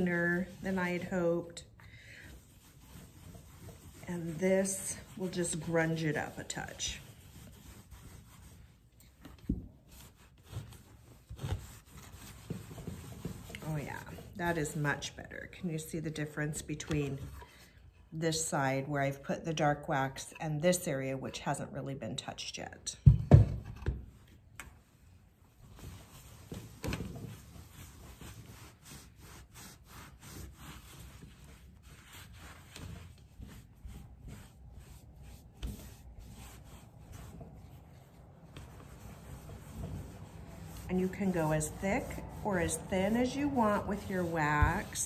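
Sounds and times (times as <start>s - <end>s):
rag scrubbing paper surface: 0.0s - 17.4s, 25.6s - 45.0s
cloth rubbing wax on board: 0.0s - 17.5s, 24.0s - 45.0s.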